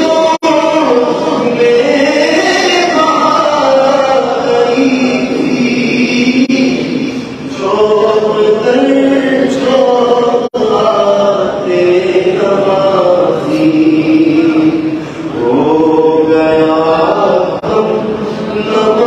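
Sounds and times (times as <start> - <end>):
man chanting into a microphone: 0.0 - 19.0.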